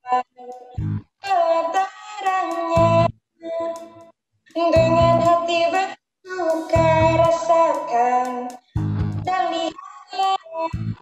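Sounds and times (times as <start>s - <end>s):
young woman singing: 0.0s - 8.6s, 9.3s - 10.8s
electric bass and band: 0.8s - 1.1s, 6.8s - 7.3s, 8.8s - 9.3s, 10.8s - 11.0s.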